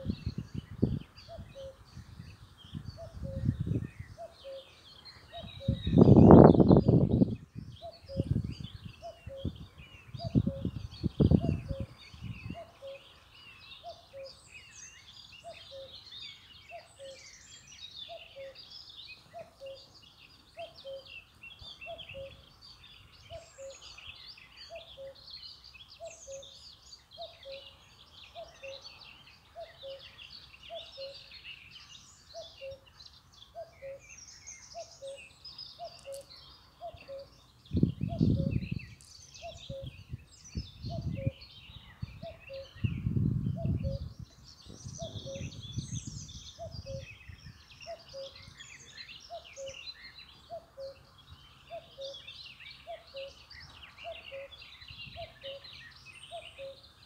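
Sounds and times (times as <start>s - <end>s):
birds chirping: 0.0s - 57.0s.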